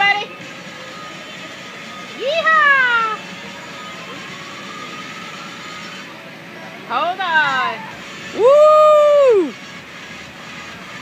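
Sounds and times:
steady background hum: 0.0 - 11.0
person shouting whoop: 8.4 - 9.5.

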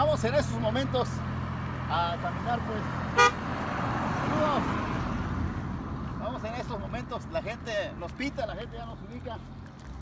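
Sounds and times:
car tyres and engine passing: 0.0 - 10.0
car horn toot: 3.2 - 3.4.

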